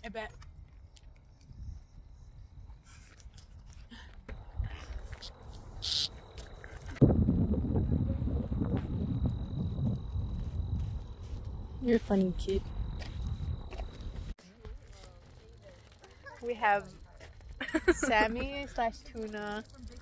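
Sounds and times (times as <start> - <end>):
wind buffeting microphone: 0.3 - 14.4.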